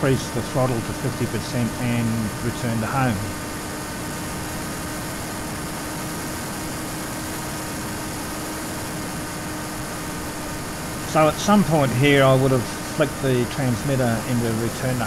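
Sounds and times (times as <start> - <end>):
electric motor and propeller whine: 0.0 - 15.0.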